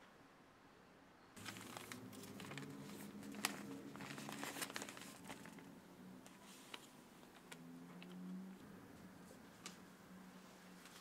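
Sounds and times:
newspaper rustling and crinkling: 0:01.4 - 0:09.9, 0:10.5 - 0:11.0.

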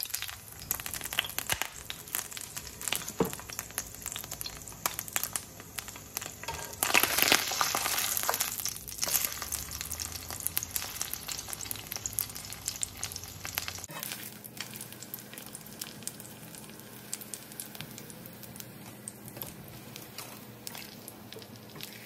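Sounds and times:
tortilla sizzling in oil: 0:00.0 - 0:22.0.

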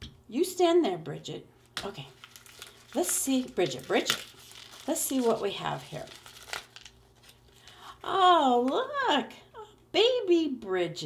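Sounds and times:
paper wrapping crinkling and tearing: 0:01.8 - 0:07.7.

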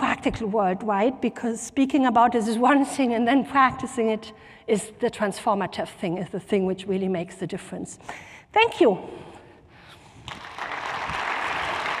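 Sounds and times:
audience applauding: 0:10.3 - 0:12.0.

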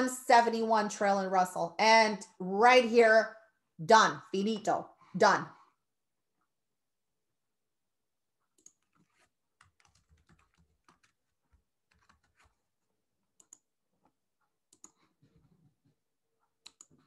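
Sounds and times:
typing on computer keyboard: 0:08.6 - 0:12.6, 0:13.4 - 0:13.7, 0:16.6 - 0:17.0.

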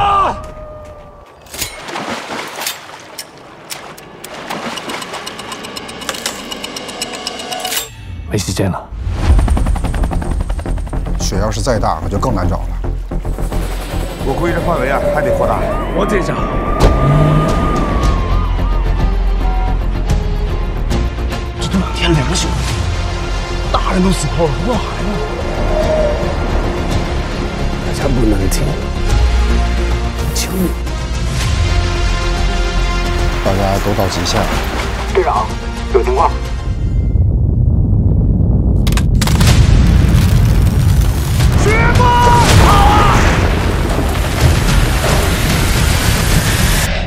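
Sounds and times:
car driving: 0:14.4 - 0:18.6
steady low rumble: 0:36.7 - 0:41.4.

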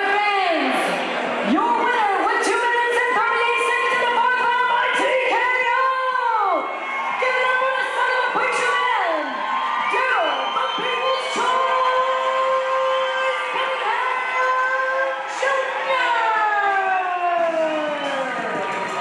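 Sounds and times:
crowd cheering and shouting: 0:00.0 - 0:19.0.

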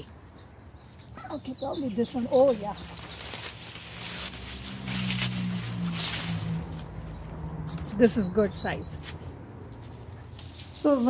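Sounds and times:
leaves rustling and crackling: 0:01.3 - 0:11.0.

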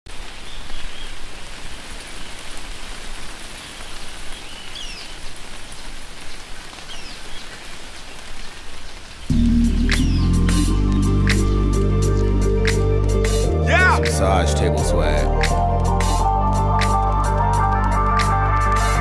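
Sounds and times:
steady rain: 0:00.1 - 0:19.0
music with deep bass: 0:09.3 - 0:19.0.

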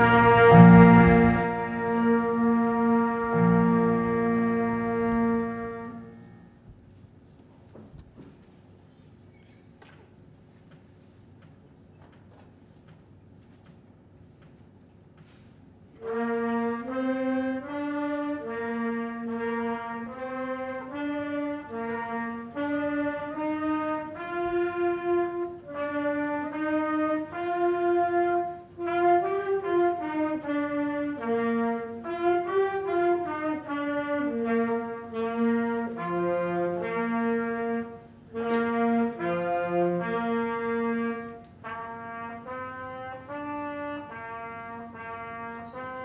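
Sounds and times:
trumpet playing a melody: 0:00.0 - 0:06.6, 0:16.0 - 0:46.0.

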